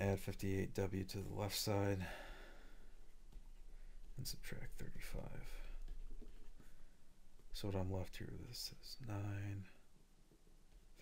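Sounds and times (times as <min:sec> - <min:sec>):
low room noise: 0:00.0 - 0:11.0.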